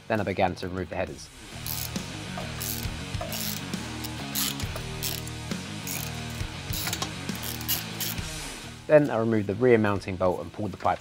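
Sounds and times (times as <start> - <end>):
background music: 0.0 - 11.0
socket ratchet clicking: 1.6 - 8.2.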